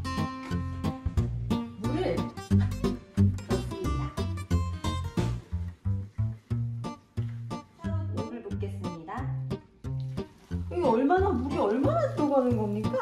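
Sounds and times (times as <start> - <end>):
plucked-string tune: 0.0 - 13.0.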